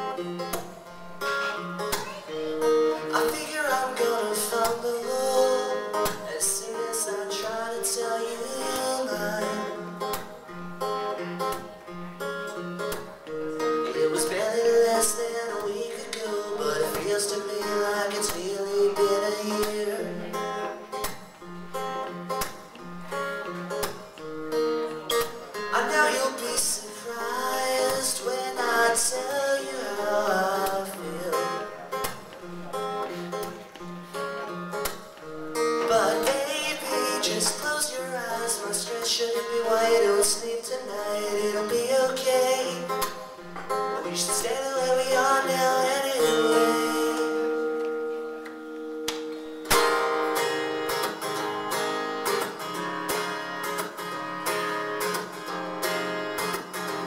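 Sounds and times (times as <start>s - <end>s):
person singing: 0.0s - 21.5s, 24.6s - 34.1s, 35.6s - 48.6s
strummed acoustic guitar: 0.0s - 57.0s.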